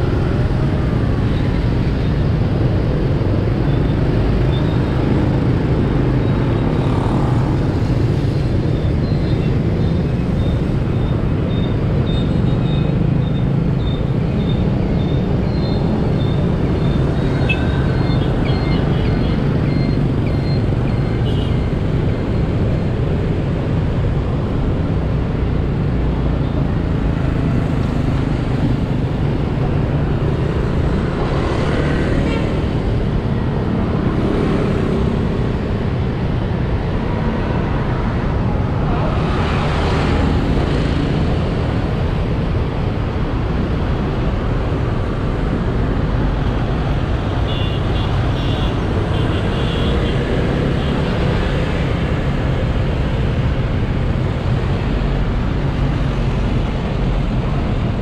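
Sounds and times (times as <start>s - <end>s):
motorbikes passing: 0.0s - 58.0s
road noise: 0.0s - 58.0s.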